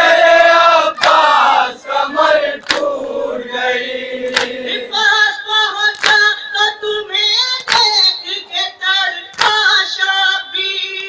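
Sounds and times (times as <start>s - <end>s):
hand slapping chest: 1.0s - 1.3s, 2.6s - 2.9s, 4.3s - 4.6s, 5.9s - 6.2s, 7.6s - 7.9s.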